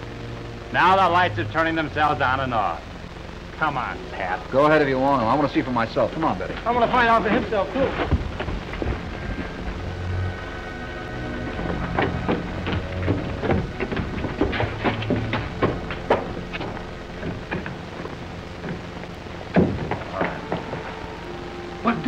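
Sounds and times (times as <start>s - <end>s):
old film soundtrack crackle: 0.0s - 22.0s
orchestral film score chords: 0.0s - 22.0s.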